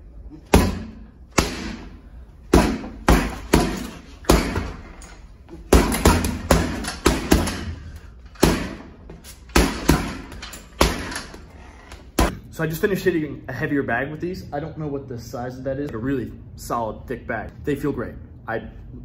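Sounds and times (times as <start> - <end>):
gloves punching heavy bag: 0.4 - 4.9, 5.6 - 11.4.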